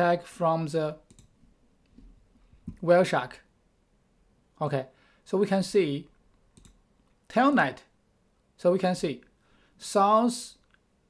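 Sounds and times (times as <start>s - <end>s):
man talking: 0.0s - 1.0s, 2.8s - 3.5s, 4.6s - 6.1s, 7.3s - 7.9s, 8.6s - 10.6s
computer mouse click: 1.1s - 1.4s, 6.3s - 6.8s.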